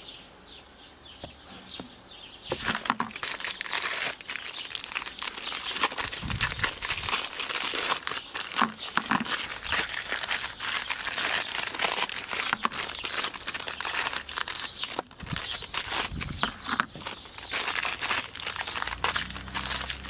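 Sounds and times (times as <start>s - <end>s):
plastic wrappers crinkling: 2.5s - 20.0s.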